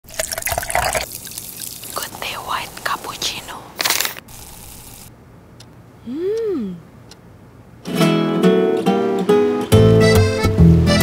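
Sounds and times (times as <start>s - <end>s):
coffee pouring into mug: 0.1s - 3.0s
faint hiss: 1.1s - 5.1s.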